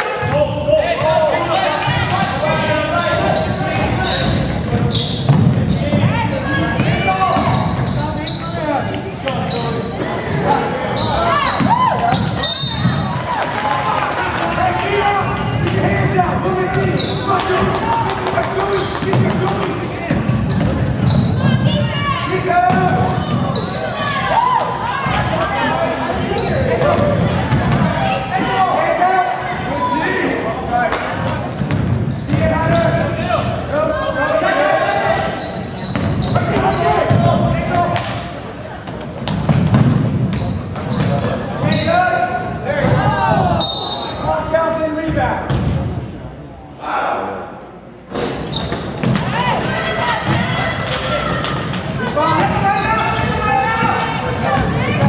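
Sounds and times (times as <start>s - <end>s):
people shouting: 49.2s - 55.0s.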